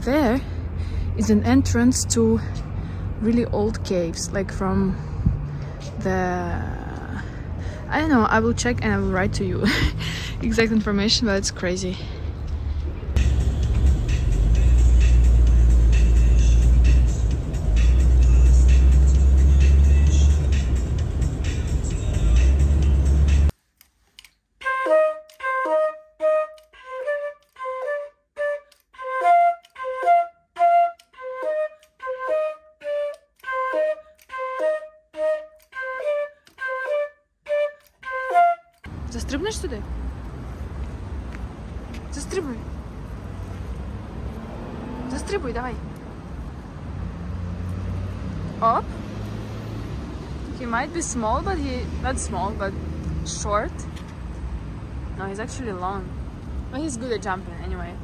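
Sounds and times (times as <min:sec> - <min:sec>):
flute playing detached notes: 0:24.6 - 0:38.9.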